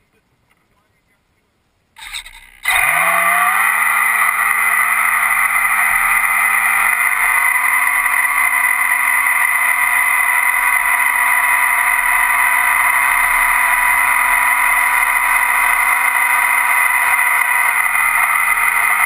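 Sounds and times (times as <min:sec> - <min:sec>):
model boat propeller motor running: 0:02.0 - 0:19.0.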